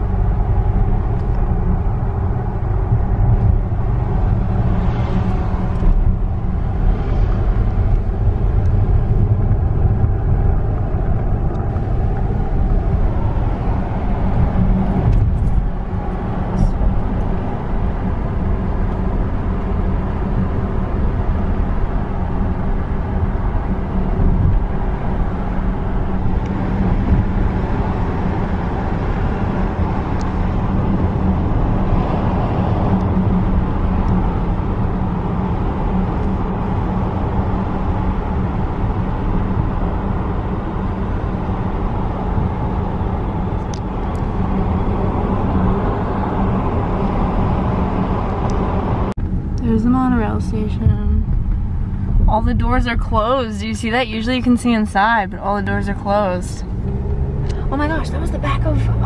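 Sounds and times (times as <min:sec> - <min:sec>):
car interior road rumble: 0:00.0 - 0:59.0.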